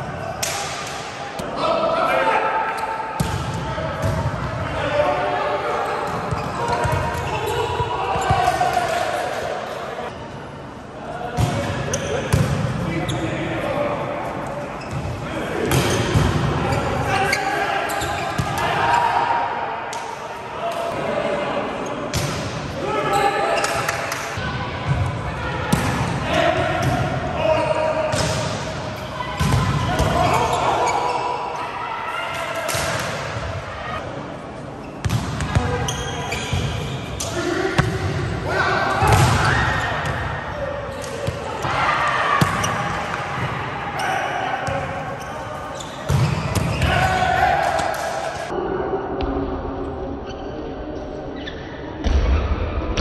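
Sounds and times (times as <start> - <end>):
players shouting calls: 0.0 - 9.9, 13.0 - 22.1, 22.7 - 34.0, 35.6 - 48.6.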